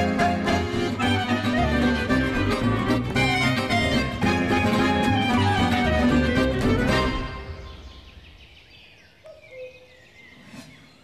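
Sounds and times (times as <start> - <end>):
faint birds chirping: 6.7 - 11.0.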